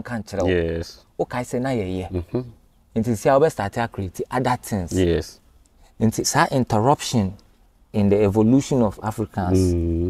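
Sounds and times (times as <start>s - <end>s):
man talking: 0.0s - 5.4s, 6.0s - 10.0s.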